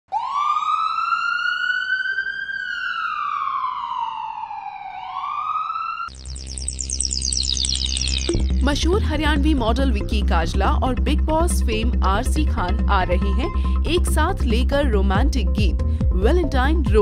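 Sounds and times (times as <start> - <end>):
siren wailing: 0.1 - 9.2
electronic music with heavy bass: 6.1 - 17.0.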